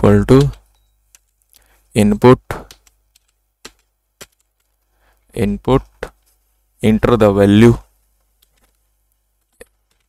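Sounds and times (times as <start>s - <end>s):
faint keyboard keystrokes: 0.3s - 1.7s, 2.5s - 4.9s, 9.4s - 10.0s.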